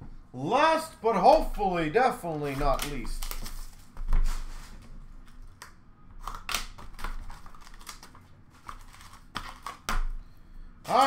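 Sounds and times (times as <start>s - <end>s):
card packs being handled: 1.2s - 5.6s, 6.2s - 9.9s, 10.8s - 11.0s.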